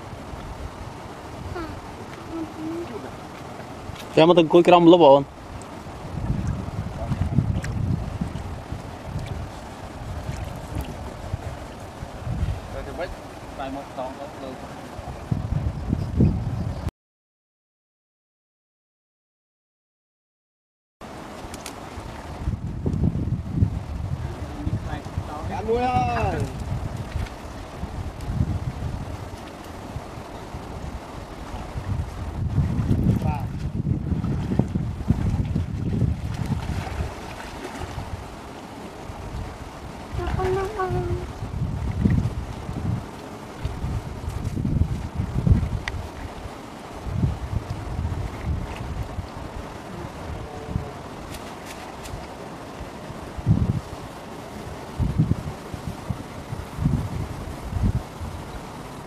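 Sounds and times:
wind buffeting microphone: 0.0 - 16.9, 21.2 - 59.0
water sloshing around waders: 1.7 - 14.8, 32.6 - 53.1.

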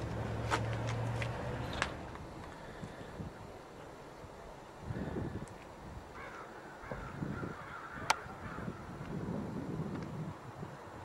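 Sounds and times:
faint bird calls: 6.1 - 8.9.

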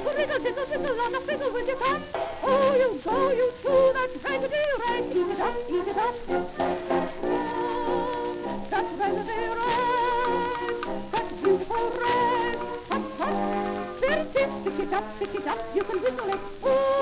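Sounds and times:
person singing with vibrato: 0.0 - 17.0
small band playing ragtime: 0.0 - 17.0.

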